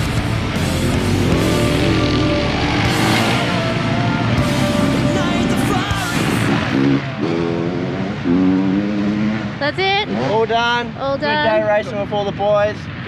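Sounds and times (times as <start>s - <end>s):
heavy rock music with electric guitar: 0.0s - 8.5s.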